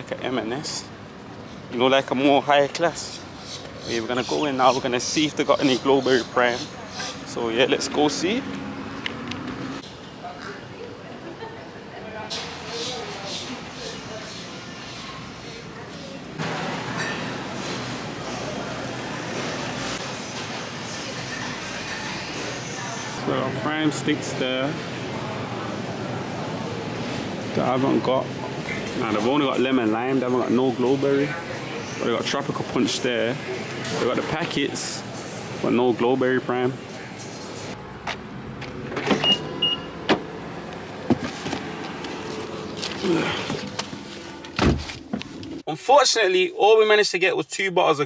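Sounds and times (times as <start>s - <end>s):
supermarket background noise: 0.0s - 45.7s.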